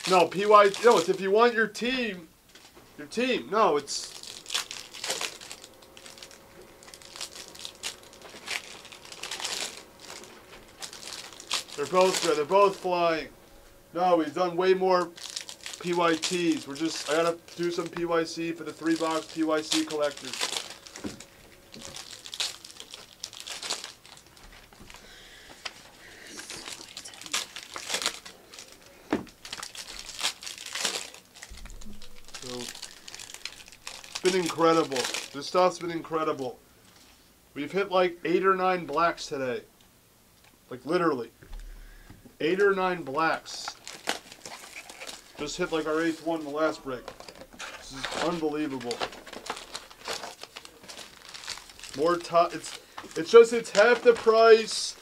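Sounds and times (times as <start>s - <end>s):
cards rustling in hands: 0.0s - 13.3s, 14.2s - 37.2s, 42.6s - 55.0s
wrappers crinkling: 0.0s - 37.2s, 42.6s - 55.0s.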